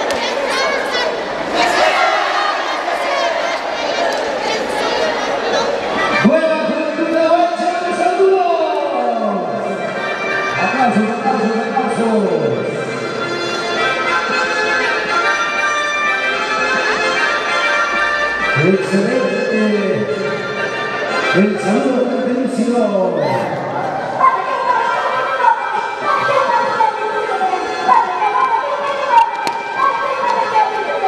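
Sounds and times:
crowd talking and shouting: 0.0 - 31.0.

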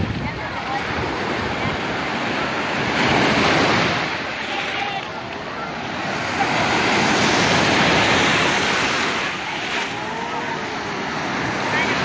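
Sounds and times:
surf washing up sandy shore: 0.0 - 12.0.

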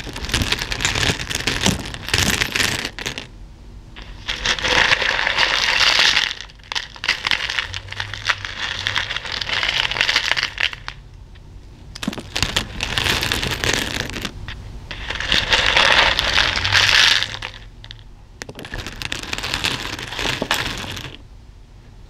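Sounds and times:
plastic beads rattling in a bowl: 0.0 - 3.3, 4.0 - 11.0, 12.0 - 21.2.

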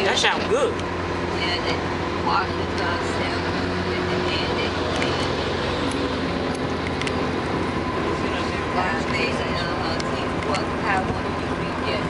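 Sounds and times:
road noise: 0.0 - 12.0
truck diesel engine drone: 0.0 - 12.0.

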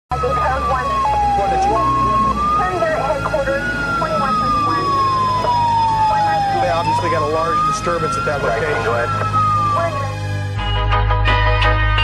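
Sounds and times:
police radio voices: 0.1 - 10.2
siren wailing: 0.1 - 10.6.

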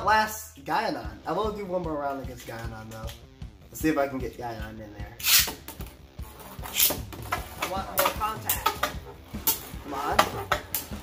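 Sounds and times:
spinning top launcher hissing rip: 5.2 - 5.6.

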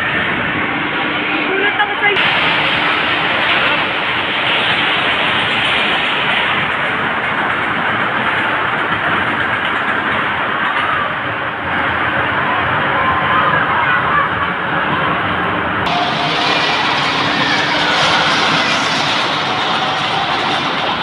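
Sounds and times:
roller coaster wheels on rails: 0.0 - 21.0.

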